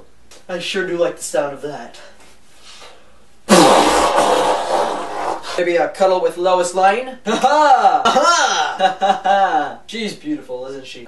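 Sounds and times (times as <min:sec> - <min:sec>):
person blowing nose: 0:02.6 - 0:05.6.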